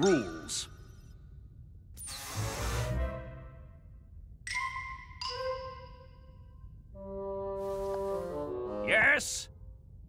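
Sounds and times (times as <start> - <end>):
cartoon sliding metal door whoosh: 2.0 - 3.0.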